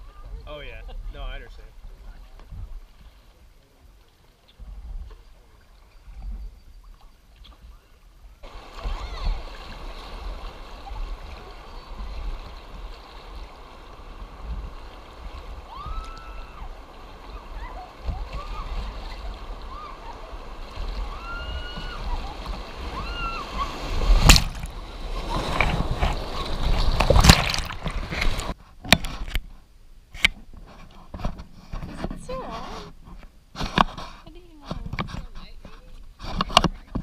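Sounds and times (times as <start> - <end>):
river water rushing and splashing: 8.4 - 28.6.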